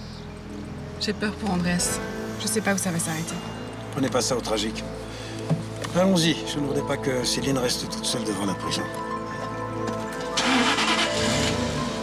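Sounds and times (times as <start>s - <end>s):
background music: 0.0s - 12.0s
car engine starting: 10.1s - 12.0s.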